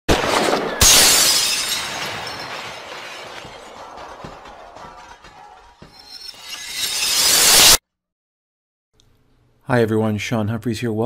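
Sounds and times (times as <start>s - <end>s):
glass shattering crash: 0.1s - 4.2s, 5.8s - 7.8s
crumbling debris: 0.1s - 4.3s.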